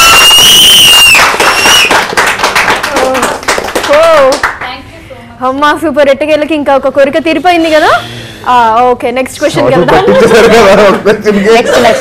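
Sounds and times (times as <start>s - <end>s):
shrill whistle: 0.0s - 2.0s
audience clapping: 0.0s - 4.8s.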